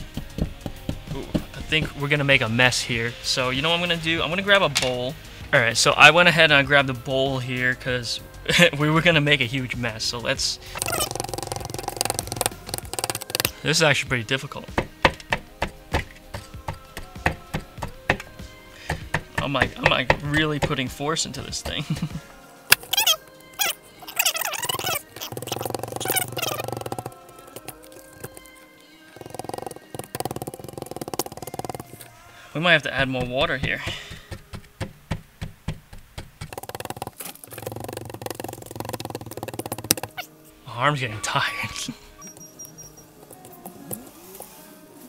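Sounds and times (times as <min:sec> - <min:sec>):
plastic tool scraping plaster: 0:10.8 - 0:13.6, 0:22.7 - 0:28.6, 0:36.4 - 0:40.2.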